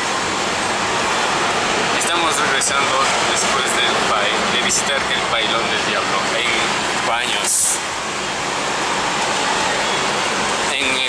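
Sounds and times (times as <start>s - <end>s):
car road noise in tunnel: 0.0s - 11.0s.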